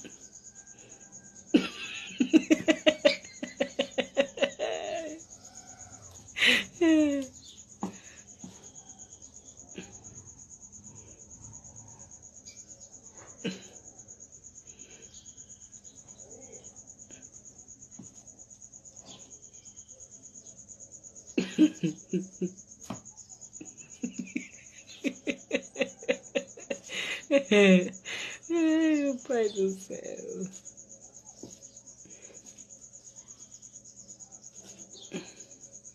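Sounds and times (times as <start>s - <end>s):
insect trilling: 0.0s - 12.9s
insect trill: 0.0s - 35.9s.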